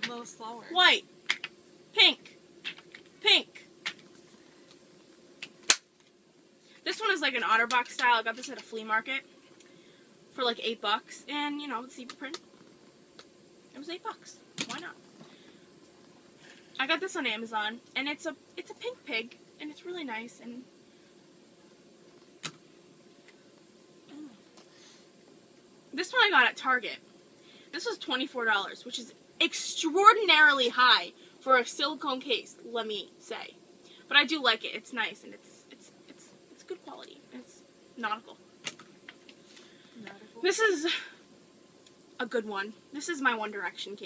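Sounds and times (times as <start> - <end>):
faint room hum: 0.0 - 44.0.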